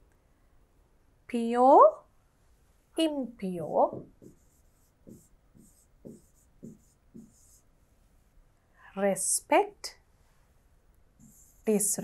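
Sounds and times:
stylus scratching on screen: 3.9s - 7.7s, 11.2s - 12.0s.

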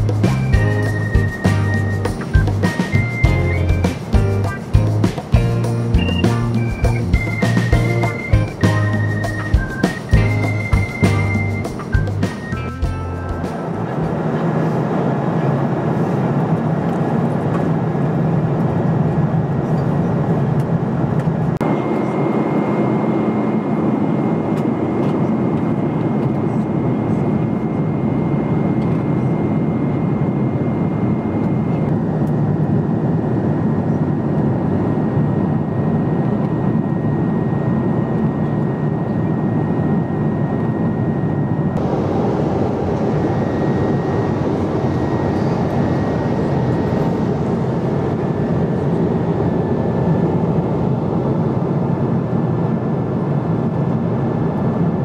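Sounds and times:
jet engine drone: 0.0s - 55.0s
faint high whine: 21.6s - 52.1s
airflow rush: 41.8s - 51.8s.

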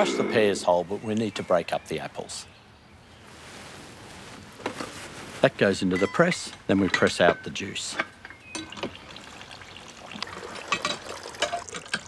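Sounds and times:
juice trickling: 8.6s - 12.0s.

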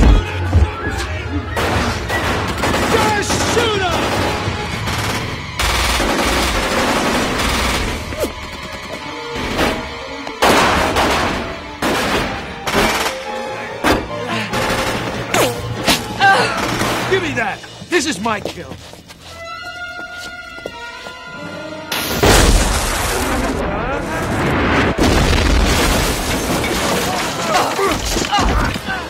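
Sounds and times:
dramatic music score: 0.0s - 29.0s.

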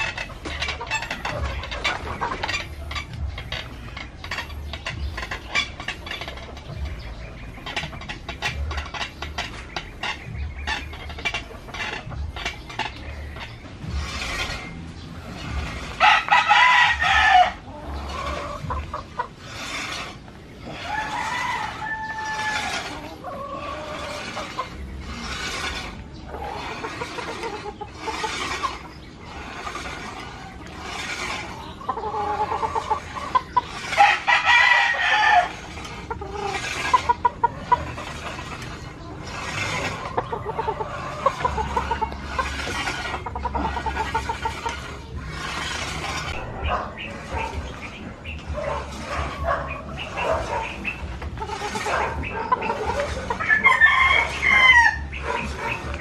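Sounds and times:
chicken clucking: 15.4s - 56.0s
rooster crowing: 20.8s - 22.9s, 53.5s - 55.1s.

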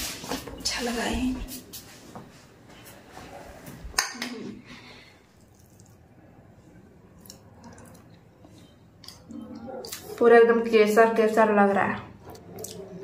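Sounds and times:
person eating from a bowl: 4.0s - 10.2s.

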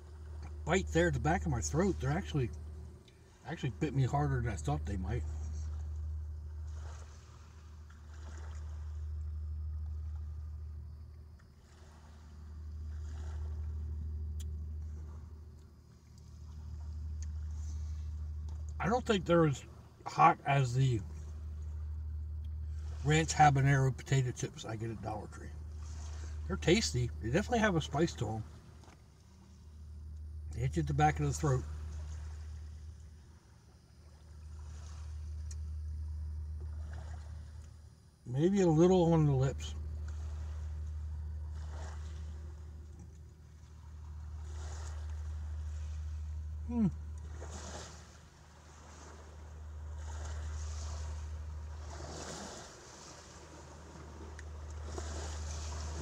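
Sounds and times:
low steady rumble: 0.0s - 56.0s
soft wash of noise: 0.0s - 56.0s
steady low hum: 0.0s - 56.0s.

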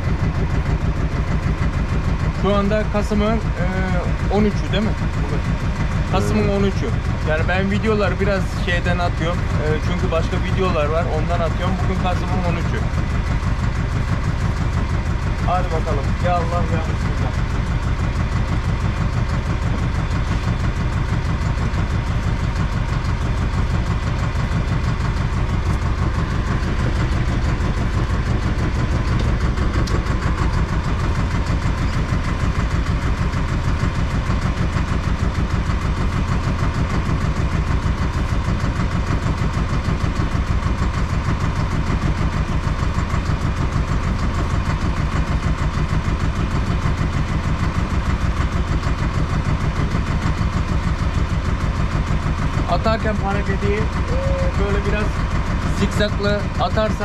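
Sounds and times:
boat engine running: 0.0s - 57.0s.

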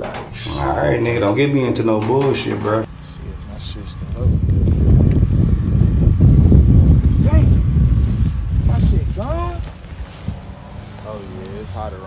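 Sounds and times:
insects trilling: 2.8s - 12.0s
loud low rumble: 2.9s - 9.6s.

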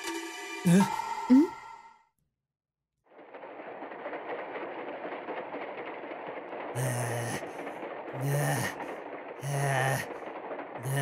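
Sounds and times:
person saying mm-hmm: 0.7s - 1.5s
train rattling rumble: 3.1s - 11.0s.

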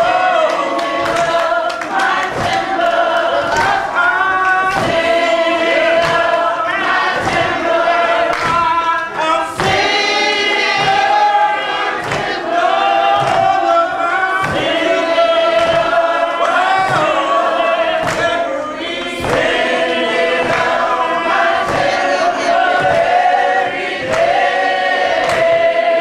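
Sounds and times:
group singing gospel song: 0.0s - 26.0s
sharp beat: 2.3s - 25.7s.

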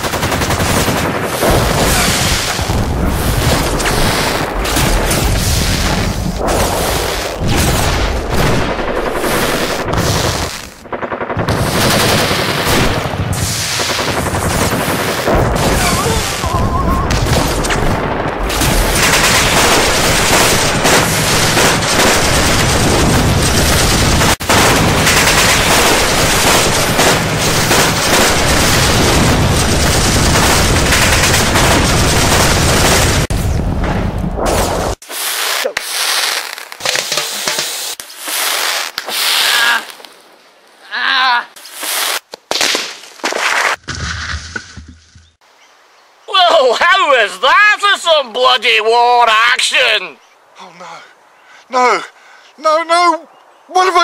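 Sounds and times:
machine-gun fire: 0.0s - 33.3s
gunshots: 0.0s - 38.7s
explosions: 0.6s - 36.4s
light gunfire crackling: 11.5s - 33.3s.

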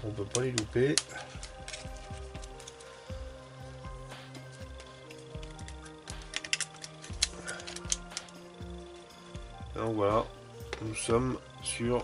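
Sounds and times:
background music with low beat: 0.0s - 12.0s
screwdriver clicking on screws: 4.3s - 8.4s.

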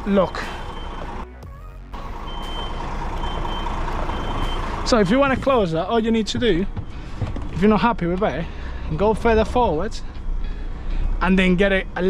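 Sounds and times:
reversing alarm beeping: 0.0s - 1.2s, 2.2s - 7.3s, 8.2s - 11.2s
diesel engine running: 0.0s - 12.0s.

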